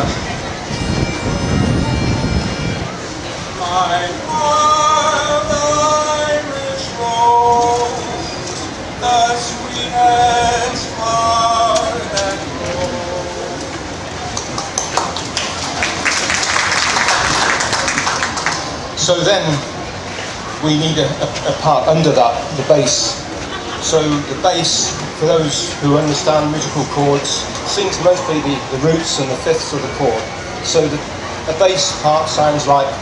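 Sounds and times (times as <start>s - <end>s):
wind rumble on microphone: 0.0s - 3.6s
outdoor crowd noise: 0.0s - 33.0s
audience clapping: 14.3s - 18.8s.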